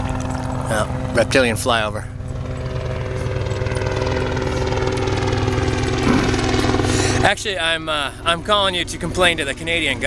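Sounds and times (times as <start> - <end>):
helicopter flying overhead: 0.0 - 10.0.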